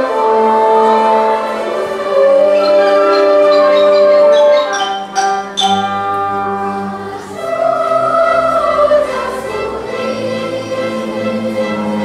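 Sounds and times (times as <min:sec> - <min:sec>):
children's choir singing: 0:00.0 - 0:12.0
orchestra playing: 0:00.0 - 0:12.0.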